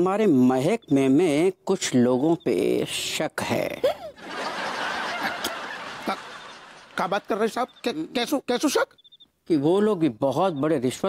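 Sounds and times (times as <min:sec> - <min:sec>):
crowd laughing: 0:04.2 - 0:07.8.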